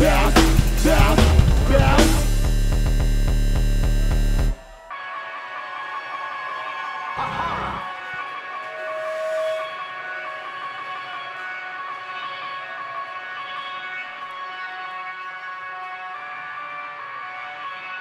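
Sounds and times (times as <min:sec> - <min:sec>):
amplified band drone: 0:00.0 - 0:04.9.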